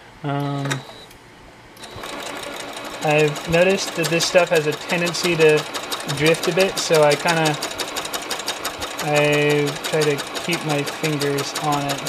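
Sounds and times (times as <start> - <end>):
sewing machine stitching: 1.8 - 12.0.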